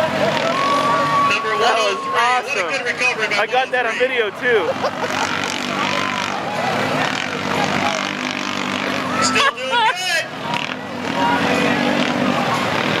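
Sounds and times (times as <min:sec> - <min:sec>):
off-road vehicle engines racing: 0:00.0 - 0:13.0
voices: 0:00.0 - 0:13.0.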